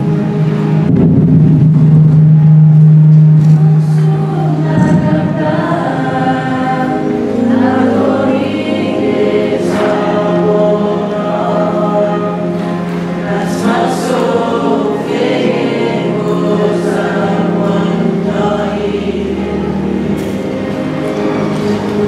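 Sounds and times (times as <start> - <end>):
steady low tone: 0.0 - 22.0
small choir singing: 3.3 - 22.0.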